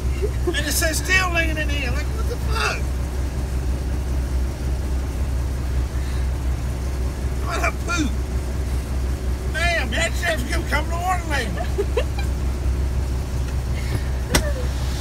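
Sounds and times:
diesel truck engine idling: 0.0 - 15.0.

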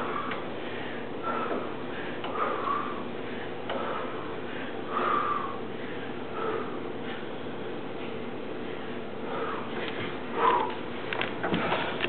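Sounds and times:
man breathing hard: 0.0 - 12.0.

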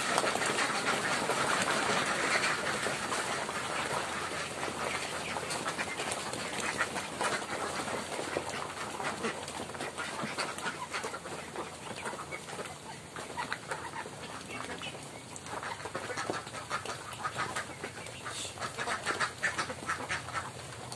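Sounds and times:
ducks quacking in chorus: 0.0 - 20.9.

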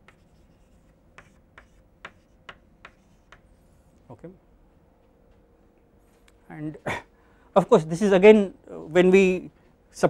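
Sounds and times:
chalk tapping and scraping: 0.0 - 4.0.

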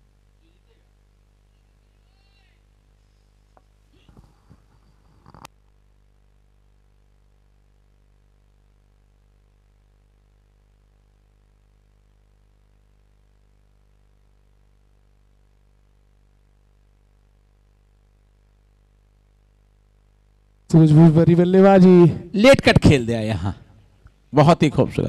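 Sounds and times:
low electrical hum: 0.0 - 25.0.

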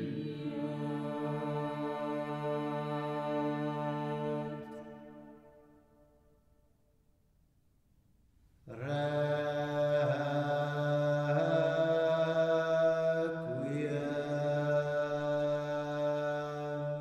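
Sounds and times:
male choir singing polyphony: 0.0 - 5.3, 8.7 - 17.0.

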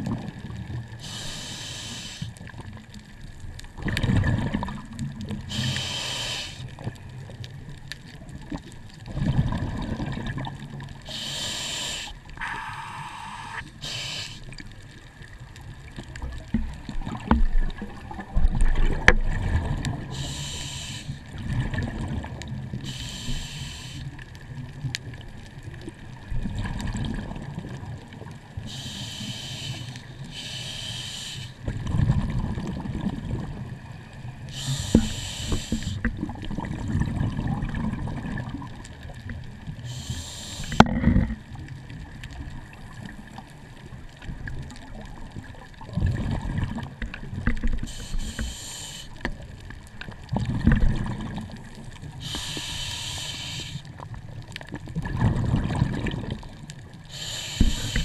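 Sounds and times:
exhaled bubbles underwater: 0.0 - 58.0
low rumble of water: 0.0 - 58.0
faint high hum: 11.1 - 14.5.

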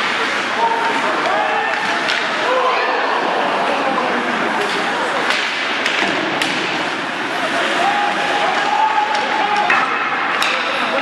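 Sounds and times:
hockey sticks and puck clacking: 0.0 - 2.5, 4.5 - 11.0
arena crowd noise: 0.0 - 11.0.

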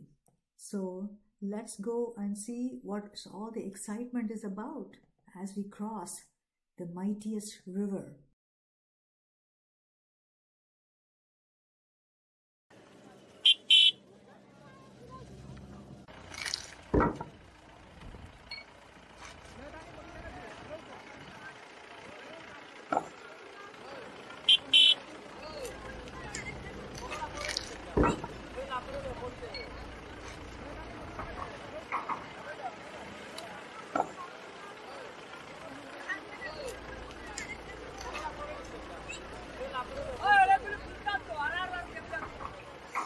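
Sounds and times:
vehicle engine running: 12.7 - 43.0
crowd chatter: 12.8 - 16.1, 19.1 - 43.0
vehicle horn double honk: 13.4 - 14.0, 24.4 - 25.1.

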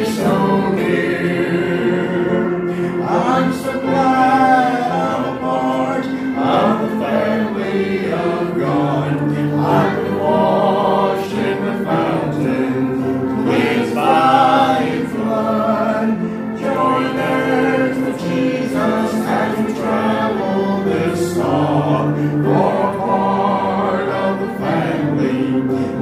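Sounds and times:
congregation singing a hymn: 0.0 - 26.0.

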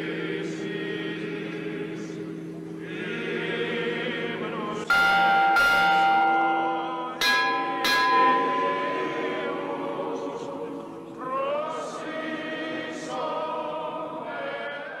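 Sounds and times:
voices chanting: 0.0 - 15.0
church bell tolling: 4.4 - 11.3.

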